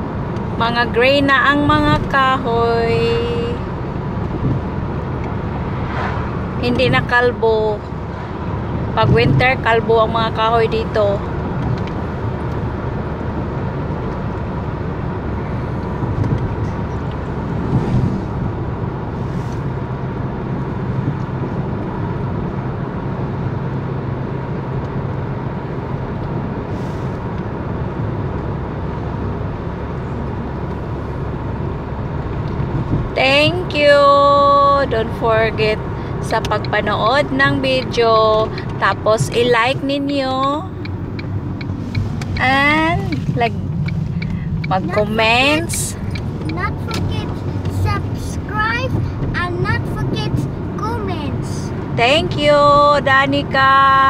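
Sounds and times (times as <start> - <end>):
car road noise from inside: 0.0 - 54.0.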